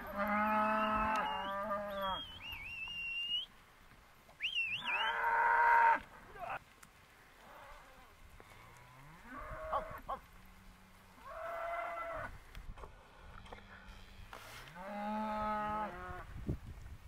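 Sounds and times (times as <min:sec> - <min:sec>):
cattle mooing: 0:00.0 - 0:02.4, 0:07.5 - 0:10.2, 0:14.6 - 0:16.2.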